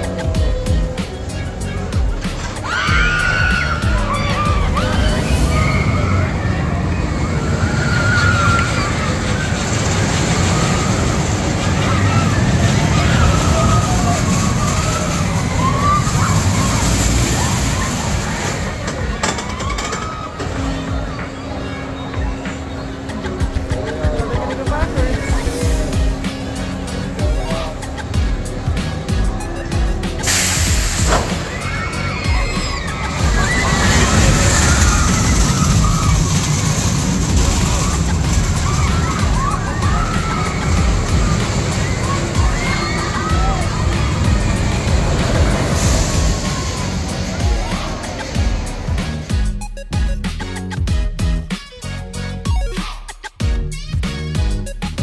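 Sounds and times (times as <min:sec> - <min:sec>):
faint voices: 0:00.0 - 0:49.4
roller coaster rumbling on track: 0:00.0 - 0:55.0
riders screaming: 0:02.4 - 0:49.2.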